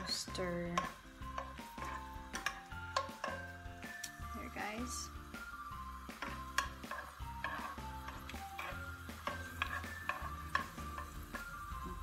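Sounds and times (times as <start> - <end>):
background music: 0.0 - 12.0
garlic sizzling in oil: 0.0 - 12.0
spoon clicking against pan: 0.7 - 3.4, 6.2 - 11.2.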